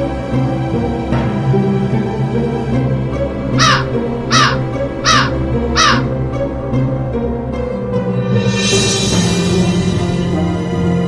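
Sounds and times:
spooky background music: 0.0 - 11.0
crow cawing: 3.6 - 6.2.

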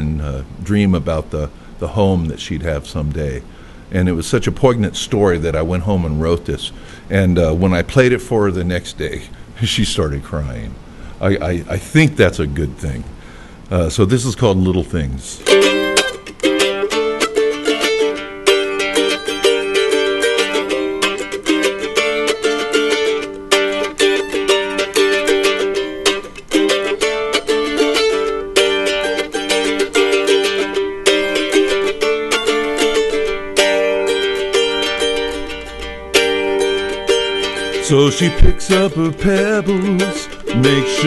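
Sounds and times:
picked mandolin: 0.0 - 9.4, 14.4 - 41.0.

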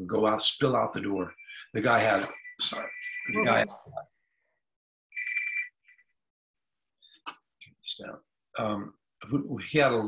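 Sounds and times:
phone ringing: 2.0 - 3.7, 5.2 - 6.0.

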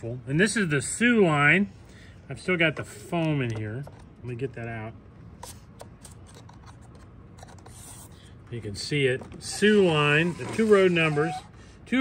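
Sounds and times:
faint rubbing of packing foam: 9.4 - 11.5.

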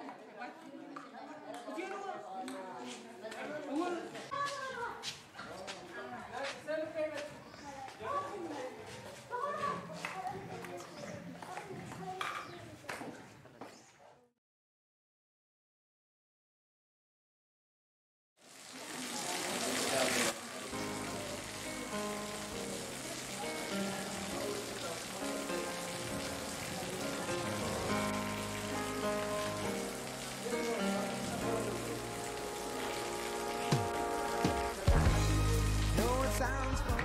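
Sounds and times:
heavy rain on paving: 18.4 - 36.4
background music with held notes: 20.7 - 37.0.

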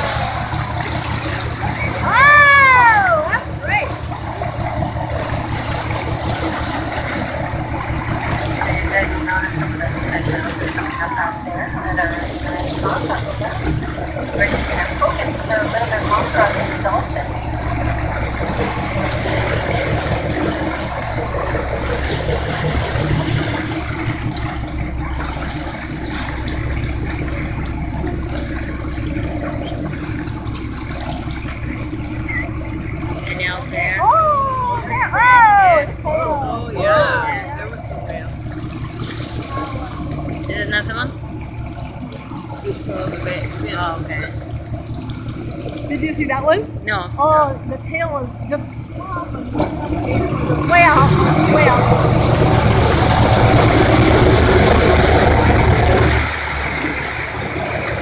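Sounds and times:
boat engine rumble: 0.0 - 58.0
water splashing on hull: 0.0 - 58.0
passengers talking: 1.2 - 23.9, 31.5 - 38.6, 39.3 - 41.2, 45.8 - 56.3.

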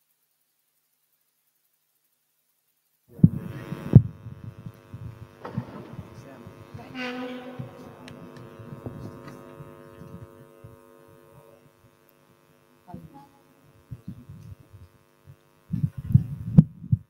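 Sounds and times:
faint room noises: 0.0 - 17.0
electrical hum: 2.9 - 17.0
microphone thumps: 3.1 - 12.0, 13.8 - 17.0.

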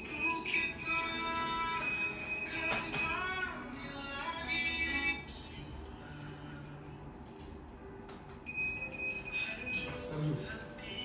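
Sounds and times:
high-pitched electronic beep: 0.0 - 3.4, 8.5 - 10.1.

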